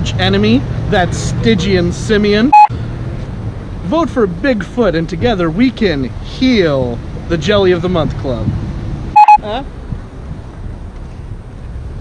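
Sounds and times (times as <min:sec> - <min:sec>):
low street rumble: 0:00.0 - 0:12.0
loud electronic beep: 0:02.5 - 0:02.7, 0:09.2 - 0:09.5.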